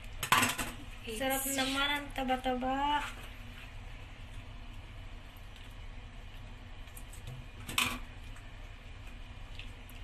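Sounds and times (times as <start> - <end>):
low steady background noise: 0.0 - 10.0.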